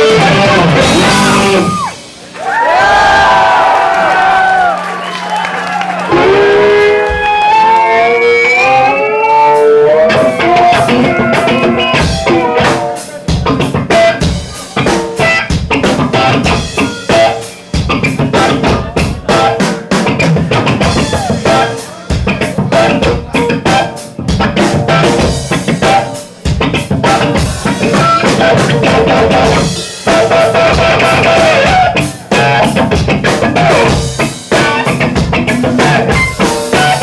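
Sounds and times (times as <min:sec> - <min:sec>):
rapid drum kit hits: 0:00.0 - 0:02.3, 0:10.1 - 0:37.0
electric guitar: 0:00.0 - 0:02.4, 0:04.6 - 0:37.0.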